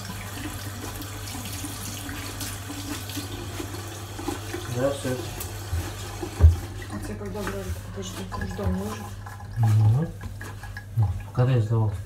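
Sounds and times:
tap running into sink: 0:00.0 - 0:12.0.

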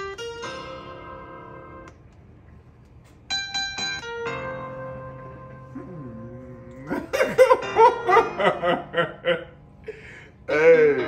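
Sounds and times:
man laughing: 0:06.7 - 0:11.0.

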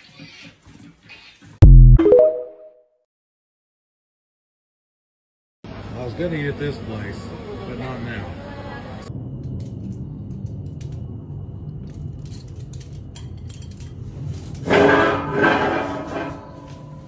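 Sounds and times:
loud pitched sound: 0:01.6 - 0:02.8.

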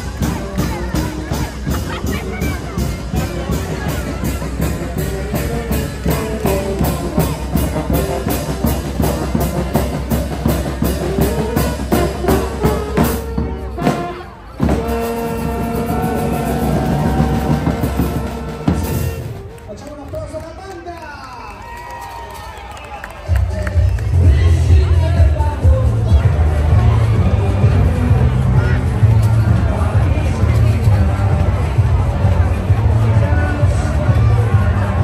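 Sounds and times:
steady drum beat: 0:00.0 - 0:19.4
crowd voices: 0:00.0 - 0:35.0
street band playing: 0:00.0 - 0:35.0.

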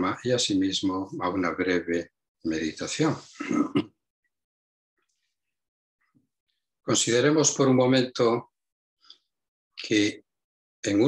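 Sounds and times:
man speaking: 0:00.0 - 0:03.6, 0:06.9 - 0:08.5.

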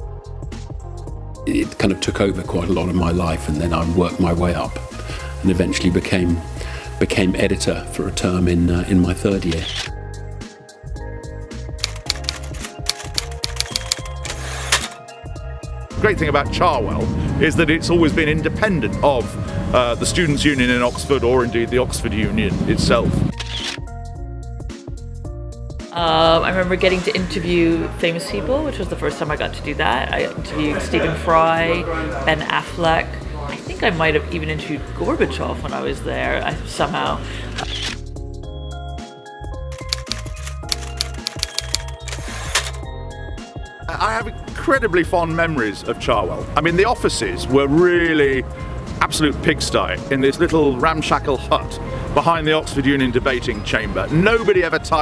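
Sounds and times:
background music with bass: 0:00.0 - 0:55.0
typewriter keys clacking: 0:11.8 - 0:15.0, 0:39.7 - 0:42.8.

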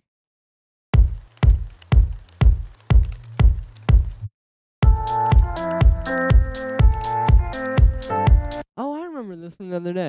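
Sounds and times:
kick drum house beat: 0:01.0 - 0:08.6.

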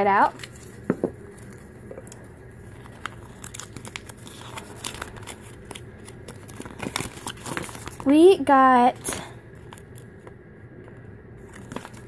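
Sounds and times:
paper and plastic crinkling: 0:00.2 - 0:10.3, 0:11.4 - 0:12.0.

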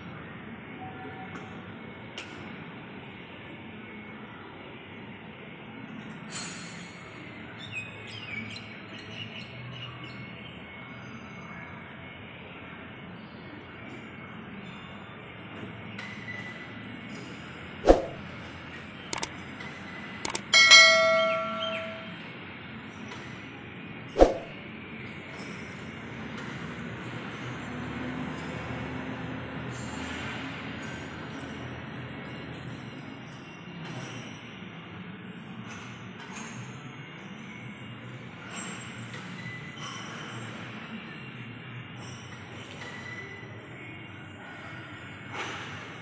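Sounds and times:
small clicks: 0:19.1 - 0:19.3, 0:20.2 - 0:20.5
ringing metal clang: 0:20.3 - 0:22.3.

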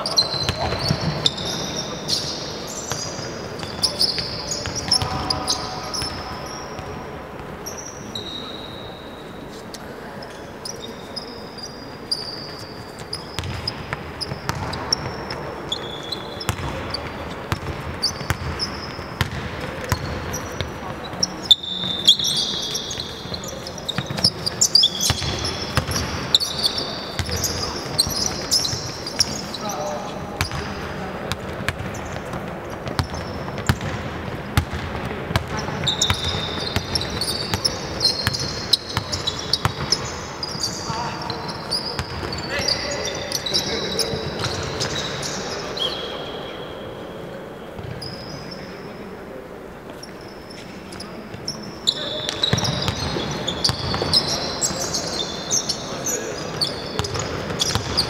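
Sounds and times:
sneakers squeaking on floor: 0:00.0 - 0:58.0
basketballs bouncing on hardwood: 0:13.4 - 0:15.5, 0:16.4 - 0:21.2, 0:23.3 - 0:26.2, 0:27.2 - 0:29.4, 0:30.4 - 0:30.7, 0:31.3 - 0:40.0, 0:42.0 - 0:42.4, 0:52.4 - 0:54.3, 0:57.0 - 0:58.0
players calling out: 0:35.4 - 0:47.4.

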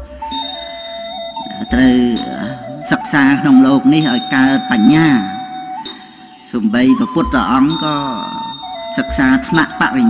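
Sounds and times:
soft electronic tones: 0:00.0 - 0:10.0
man speaking: 0:01.4 - 0:05.4, 0:06.4 - 0:10.0.

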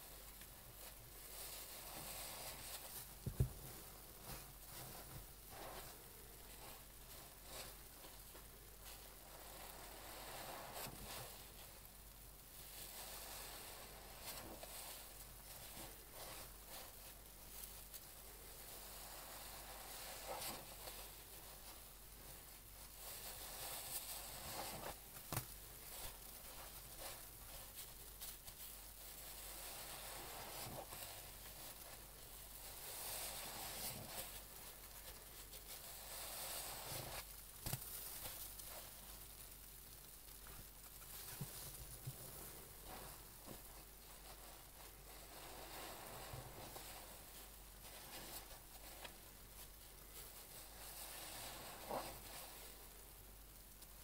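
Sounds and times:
wet sponge squelching: 0:50.3 - 0:52.7.

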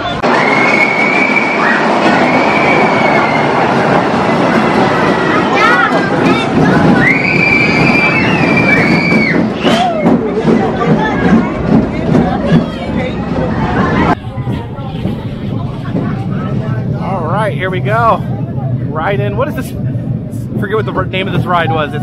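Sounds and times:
long high squeal: 0:00.0 - 0:03.8, 0:07.0 - 0:09.9
roller coaster train rolling: 0:00.0 - 0:22.0.

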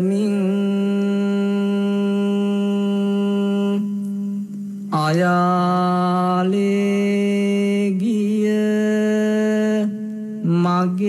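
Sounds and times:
person chanting long notes: 0:00.0 - 0:11.0.

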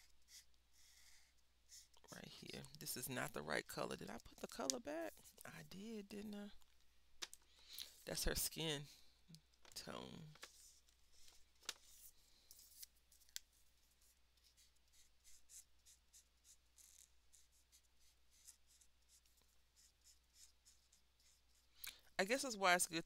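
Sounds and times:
marker scratching on paper: 0:00.0 - 0:06.0, 0:14.0 - 0:21.7.

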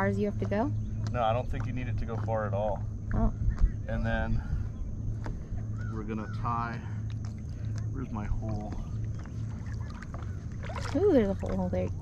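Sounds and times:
steady low rumble: 0:00.0 - 0:12.0
water lapping around wader: 0:00.0 - 0:12.0
small splashes: 0:06.9 - 0:12.0.

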